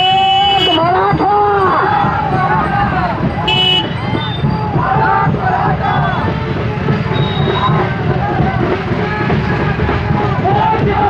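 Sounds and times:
vehicle horn toot: 0:00.0 - 0:00.9, 0:03.4 - 0:04.4, 0:07.1 - 0:07.8
people calling out: 0:00.0 - 0:11.0.

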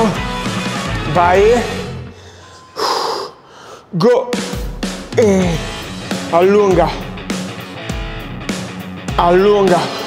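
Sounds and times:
man exhaling forcefully: 0:05.1 - 0:05.9.

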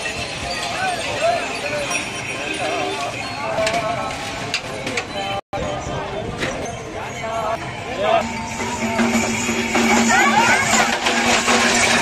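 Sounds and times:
crowd chatter and calls: 0:00.0 - 0:12.0
hooves clopping: 0:08.2 - 0:12.0
wooden cart rolling: 0:08.2 - 0:12.0.

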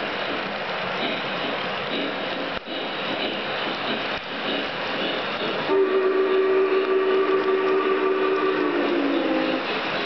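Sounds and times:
toy trains rumbling on track: 0:00.0 - 0:10.0
toy train horn: 0:05.7 - 0:09.7.

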